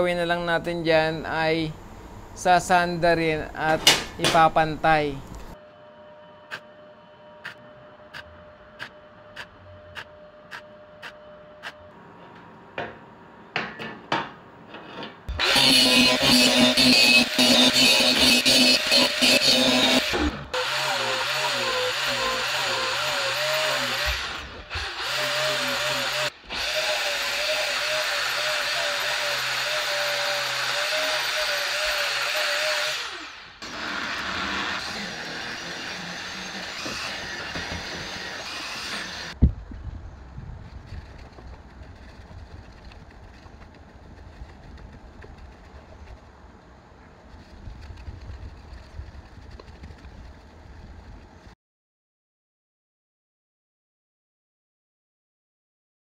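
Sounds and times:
angle grinder whine: 5.4s - 12.0s, 15.3s - 39.4s.

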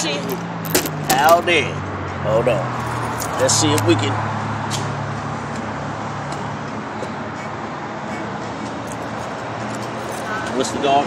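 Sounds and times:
road traffic noise: 0.0s - 11.0s
vehicle engine droning nearby: 0.0s - 11.0s.

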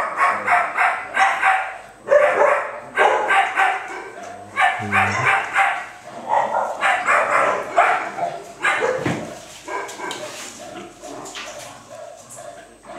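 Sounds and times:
dog barking: 0.0s - 12.9s.

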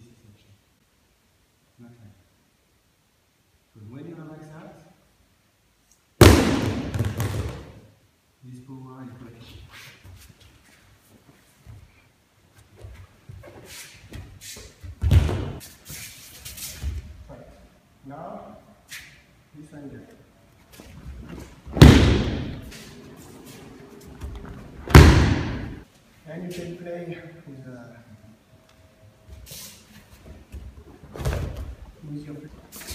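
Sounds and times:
body thudding onto mat: 15.0s - 15.6s, 21.2s - 22.7s, 24.2s - 25.8s.

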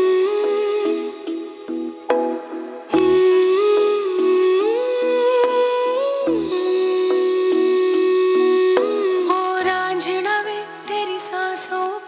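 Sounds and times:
soft repeating accompaniment: 0.0s - 11.7s
person humming a melody: 3.0s - 9.8s.

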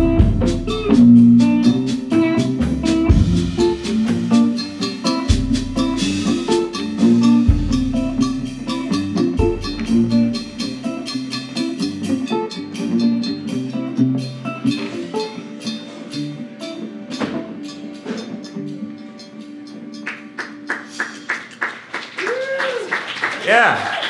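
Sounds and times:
electric slide guitar: 0.0s - 20.1s.

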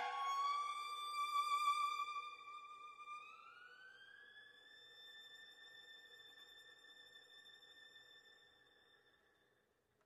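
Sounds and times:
solo violin sliding to high note: 0.0s - 1.0s.

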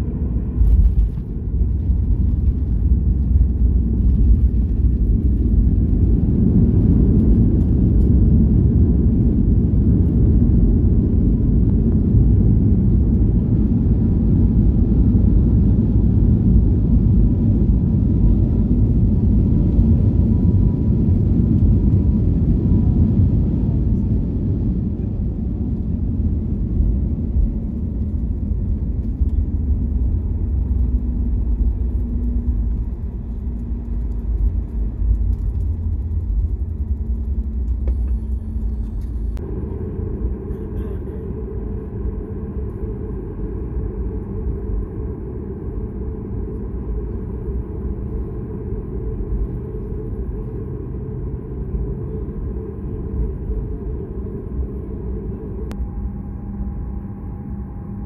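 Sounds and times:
engine whine sliding down: 0.0s - 58.0s
jet engine and wheels rumbling: 0.0s - 58.0s.

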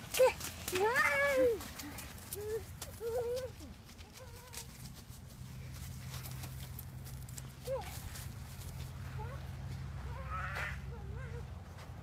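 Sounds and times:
child making playful cries: 2.4s - 4.6s.

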